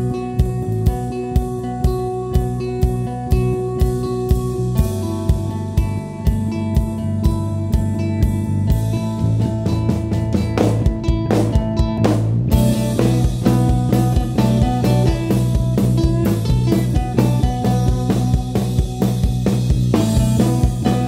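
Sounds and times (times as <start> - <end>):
quick drum strokes: 0.0 - 21.0
rock band playing unplugged: 0.0 - 21.0.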